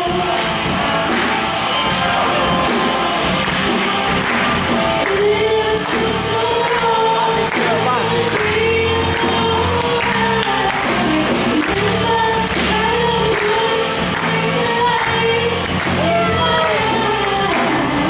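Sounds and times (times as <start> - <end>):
bass guitar: 0.0 - 18.0
drum kit: 0.0 - 18.0
electric guitar: 0.0 - 18.0
woman singing: 5.0 - 18.0.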